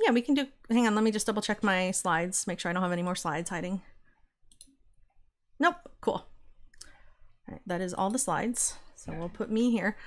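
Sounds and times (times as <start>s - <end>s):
faint keyboard or mouse click: 4.5s - 4.8s
person speaking: 7.5s - 10.0s.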